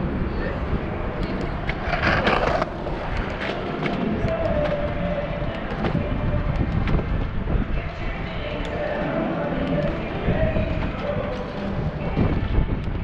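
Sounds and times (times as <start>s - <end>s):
bicycle tyre rumble: 0.0s - 13.0s.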